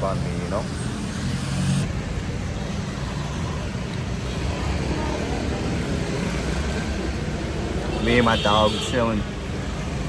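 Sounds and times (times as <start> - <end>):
low hum of passing vehicles: 0.0 - 10.0.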